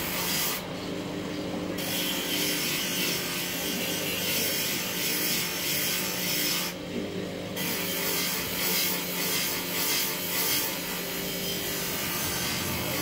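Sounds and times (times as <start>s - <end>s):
grinding wheel humming: 0.0s - 6.7s, 7.6s - 13.0s.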